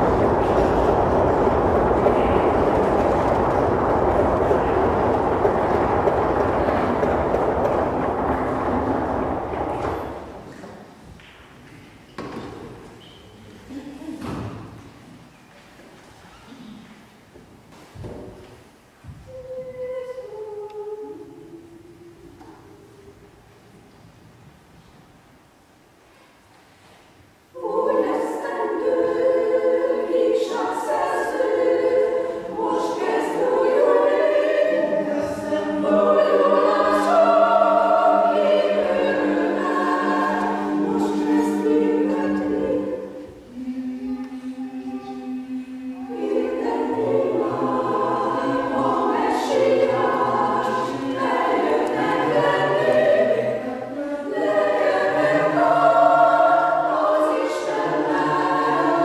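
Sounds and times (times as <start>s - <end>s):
choir singing a cappella: 0.0s - 10.6s, 19.2s - 23.4s, 27.5s - 59.0s.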